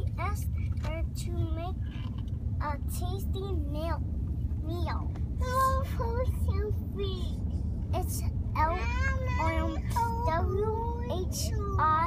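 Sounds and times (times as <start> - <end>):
car road rumble from inside: 0.0 - 12.0.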